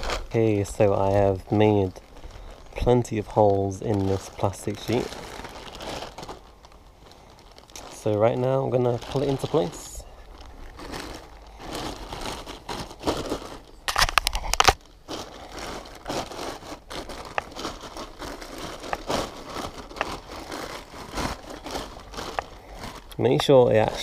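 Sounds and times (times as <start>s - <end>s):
plastic sheeting crinkling: 0.0s - 24.0s.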